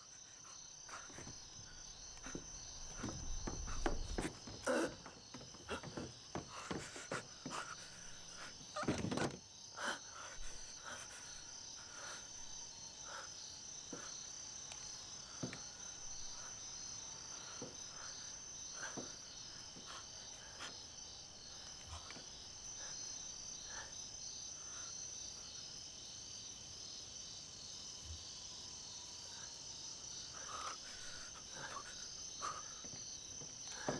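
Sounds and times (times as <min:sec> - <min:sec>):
crickets chirring: 0:00.0 - 0:33.9
faint taps and creaks: 0:02.1 - 0:07.8, 0:08.8 - 0:09.4, 0:15.4 - 0:15.6, 0:31.6 - 0:33.9.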